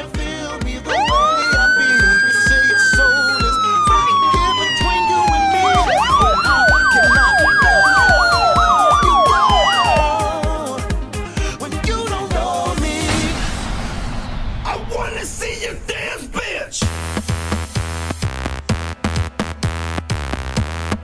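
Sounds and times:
music beat: 0:00.1 - 0:13.1, 0:16.8 - 0:21.0
siren yelp: 0:00.9 - 0:10.7
police siren wailing: 0:00.9 - 0:10.8.

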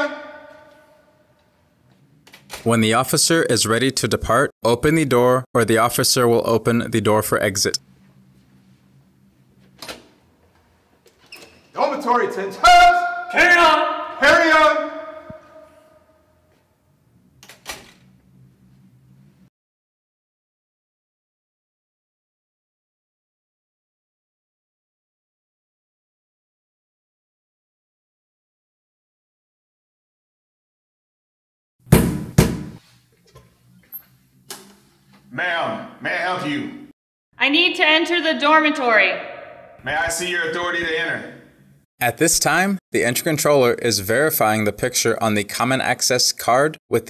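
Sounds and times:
knocks on a door: 0:31.9 - 0:32.8.

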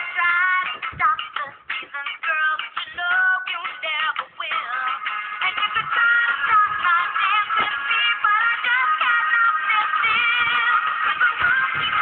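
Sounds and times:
backing music: 0:00.0 - 0:12.0.

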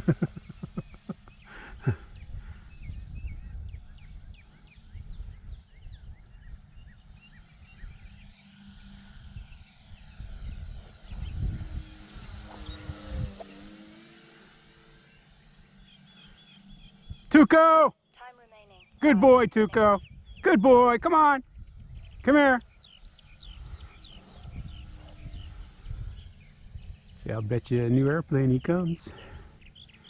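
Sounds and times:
model plane motor flying by: 0:00.0 - 0:17.6, 0:21.4 - 0:30.0
birds chirping: 0:00.0 - 0:30.0
wind on microphone: 0:01.8 - 0:14.6, 0:19.7 - 0:20.4, 0:21.4 - 0:28.2.

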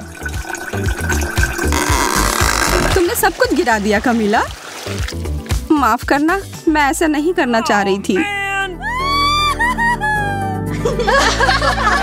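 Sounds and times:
cola gushing and splashing: 0:00.0 - 0:06.0
background music with beat: 0:05.0 - 0:06.8.

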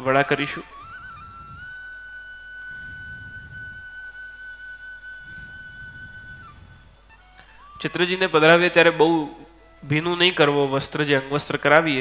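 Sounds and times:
flute note held: 0:00.0 - 0:08.2.

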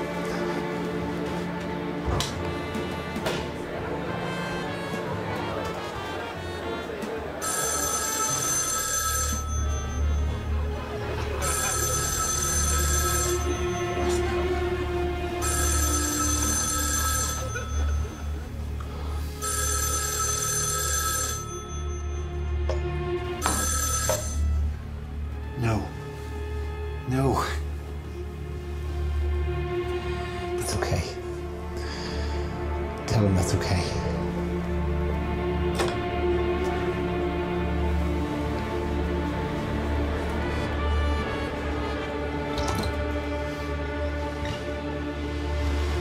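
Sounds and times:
low droning music: 0:00.0 - 0:46.0
old-fashioned telephone bell ringing: 0:07.4 - 0:10.5, 0:11.4 - 0:14.1, 0:15.4 - 0:18.5, 0:19.4 - 0:22.4, 0:23.4 - 0:24.6.

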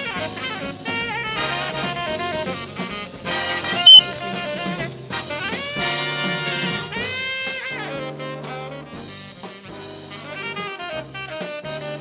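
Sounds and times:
swing jazz with saxophone and brass: 0:00.0 - 0:04.0, 0:04.8 - 0:12.0.

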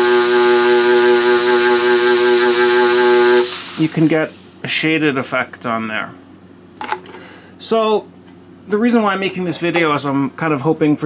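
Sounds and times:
micromotor handpiece buzzing: 0:00.0 - 0:04.6.

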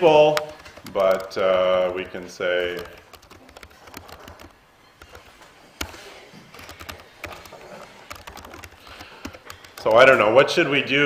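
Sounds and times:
man's voice: 0:00.0 - 0:03.0, 0:09.8 - 0:11.0
keyboard key clicks: 0:02.0 - 0:06.0.

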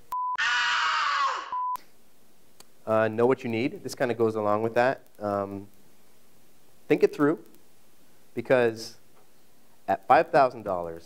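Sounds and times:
strained scream-like voice: 0:00.4 - 0:01.6.

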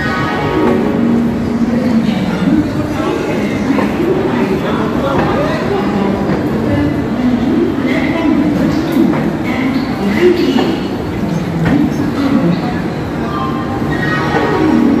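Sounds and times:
people's voices: 0:00.0 - 0:15.0
train rumbling: 0:00.0 - 0:15.0.

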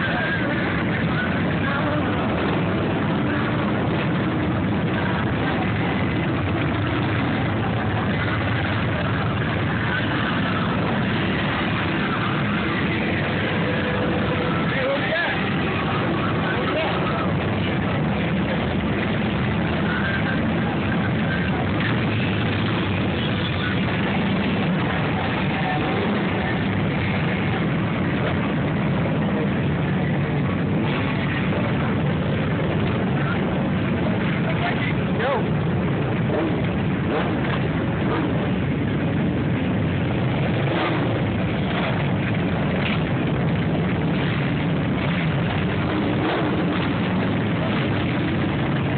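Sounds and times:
motorcycle engines rumbling: 0:00.0 - 0:48.9
voices: 0:00.0 - 0:48.9.

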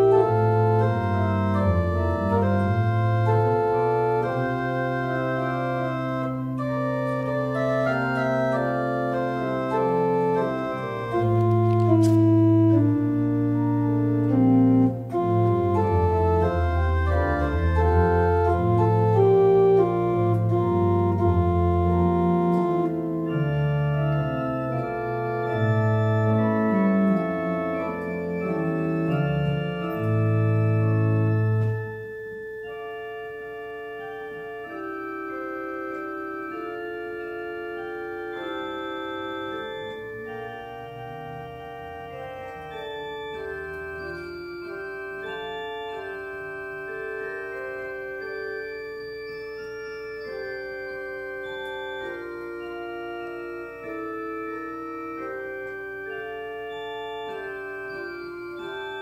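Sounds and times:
church organ sustained chords: 0:00.0 - 0:59.0
deep organ pedal bass notes: 0:00.0 - 0:59.0.

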